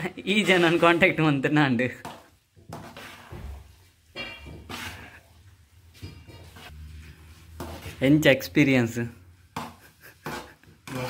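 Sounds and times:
metal spoon scraping a pan: 0:00.2 - 0:08.5, 0:09.4 - 0:11.0.

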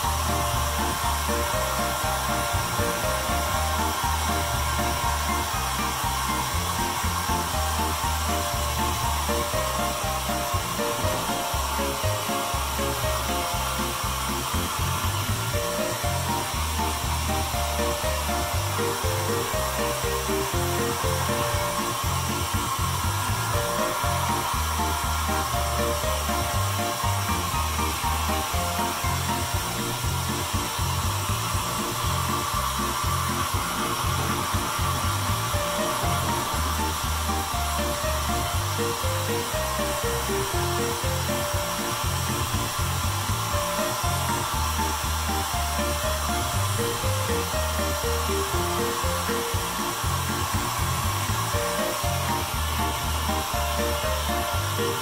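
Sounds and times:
background music with bass line: 0:00.0 - 0:55.0
hair dryer blowing: 0:00.0 - 0:55.0.

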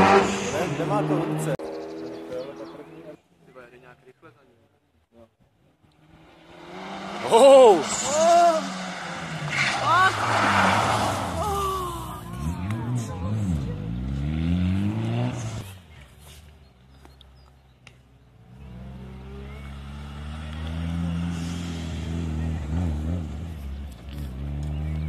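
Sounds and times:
rally car engine revving: 0:00.0 - 0:03.1, 0:05.9 - 0:16.1, 0:18.4 - 0:25.0.

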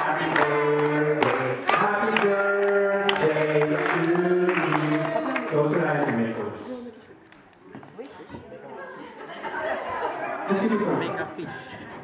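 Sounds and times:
crowd chatter in a large hall: 0:00.0 - 0:12.0.

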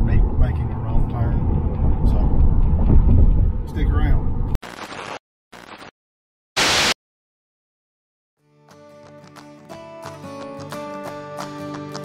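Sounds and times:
static hiss bursts: 0:04.6 - 0:05.9, 0:06.6 - 0:07.0.

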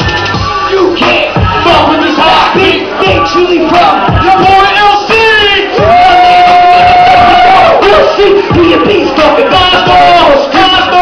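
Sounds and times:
hip-hop music over pa: 0:00.0 - 0:11.0.

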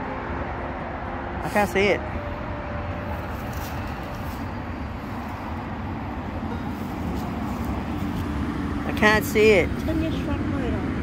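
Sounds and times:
low outdoor rumble: 0:00.0 - 0:11.0
footsteps through dry leaves: 0:03.0 - 0:05.6.

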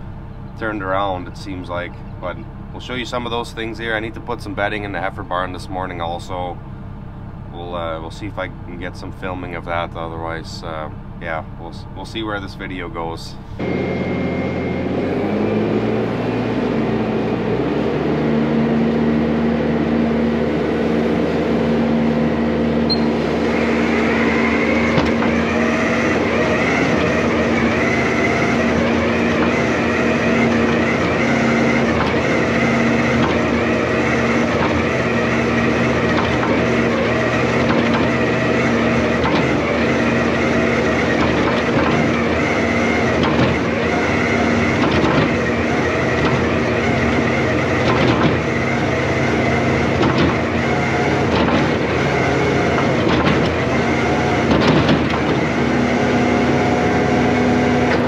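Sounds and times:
diesel engine running: 0:00.0 - 0:58.0
high-pitched machine whine: 0:13.3 - 0:58.0.

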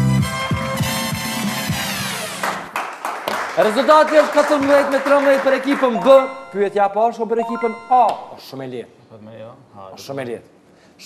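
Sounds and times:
quiz show jingle: 0:03.9 - 0:08.4.

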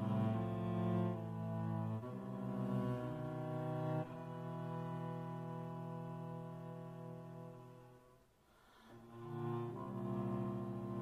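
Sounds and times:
solo cello bowing low notes: 0:00.0 - 0:11.0.

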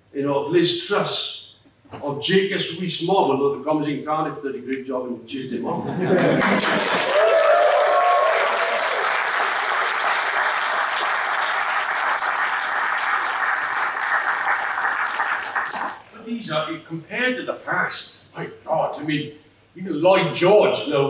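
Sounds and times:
audience applauding: 0:06.2 - 0:16.1.

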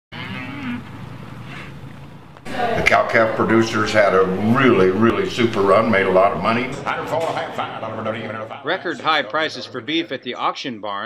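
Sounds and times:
cattle mooing: 0:00.1 - 0:01.8.

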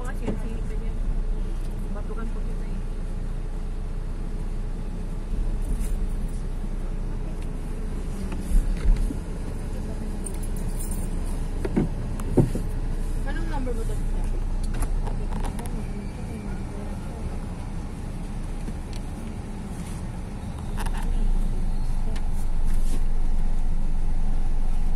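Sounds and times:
low vehicle rumble: 0:00.0 - 0:24.9.

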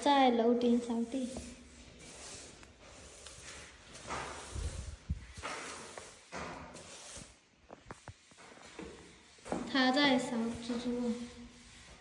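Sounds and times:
person speaking: 0:00.0 - 0:01.8, 0:09.6 - 0:11.4
broom sweeping a tiled floor: 0:00.0 - 0:12.0.

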